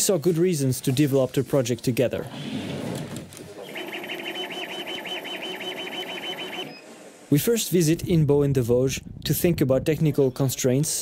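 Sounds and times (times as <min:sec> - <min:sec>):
laser cutter motors chirping: 0:03.6 - 0:06.8.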